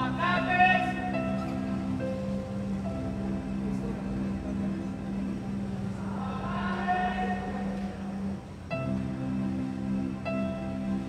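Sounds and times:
slow instrumental music: 0.0s - 11.0s.

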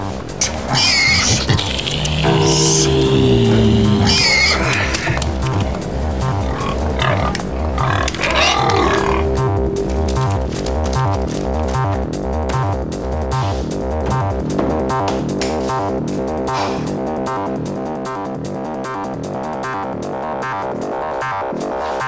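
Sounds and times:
pigs squealing: 0.4s - 5.2s, 6.2s - 9.5s
electronic beat music: 2.2s - 13.3s.

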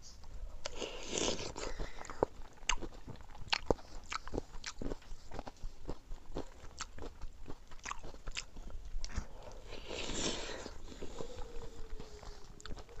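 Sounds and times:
people chewing: 0.0s - 13.0s.

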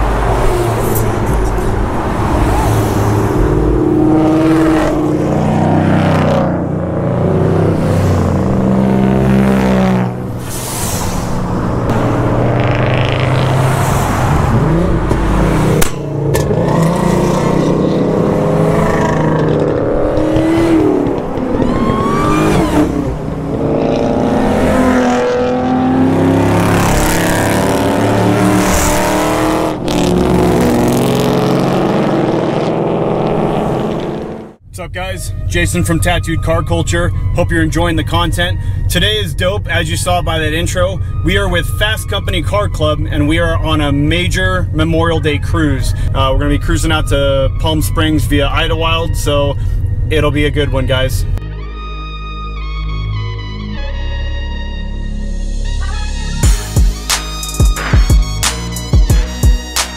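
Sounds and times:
cars passing at speed: 0.0s - 34.6s.

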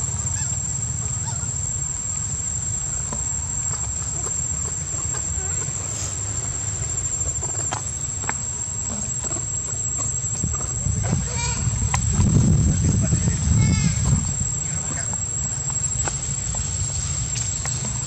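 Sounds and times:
insect drone: 0.0s - 18.0s
pitched animal call: 0.1s - 1.7s, 3.7s - 6.3s.

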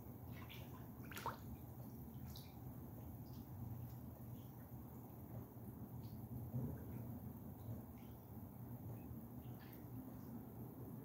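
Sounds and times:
ducks splashing and dripping: 0.0s - 5.3s.

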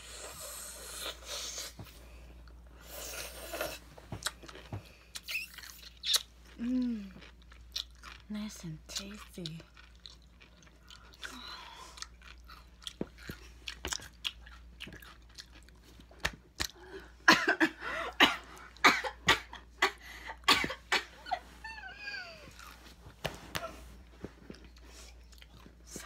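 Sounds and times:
wet chewing and crunching: 4.1s - 17.0s, 22.5s - 23.2s, 24.1s - 26.0s.

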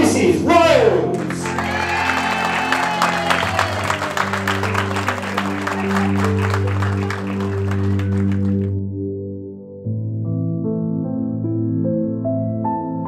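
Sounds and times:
music playing: 0.0s - 13.0s
crowd clapping: 1.0s - 8.8s.

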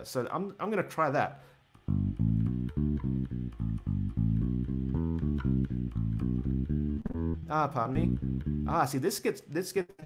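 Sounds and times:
electric bass guitar notes: 1.8s - 9.0s.

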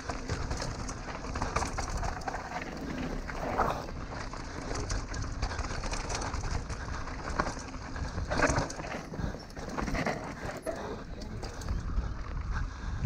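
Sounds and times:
bike clicks and rattles: 0.0s - 12.8s
wind and tyre noise: 0.0s - 13.0s.

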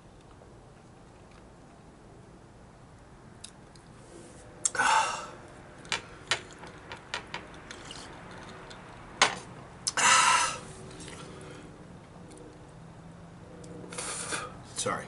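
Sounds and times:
man exhaling loudly: 4.7s - 5.4s, 9.9s - 10.7s
small clicks and creaks: 5.8s - 8.9s.

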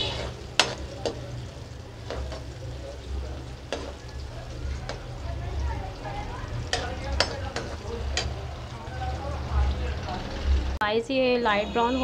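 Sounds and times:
metal spatula scraping a pan: 0.0s - 1.2s, 3.6s - 5.2s, 6.6s - 8.4s
onions sizzling in hot oil: 0.0s - 12.0s.

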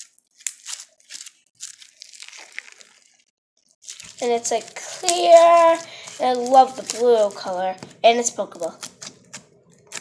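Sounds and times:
crunchy slime crackles: 0.0s - 10.0s.

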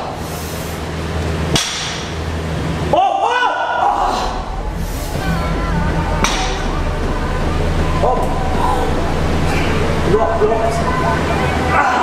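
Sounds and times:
steady low hum: 0.0s - 12.0s
weight plates clanking: 3.8s - 12.0s.

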